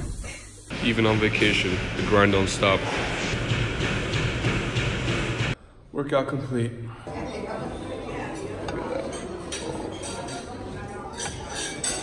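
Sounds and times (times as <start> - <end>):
cardio machine rumbling: 0.7 - 5.6
faint regular beat: 0.7 - 5.6.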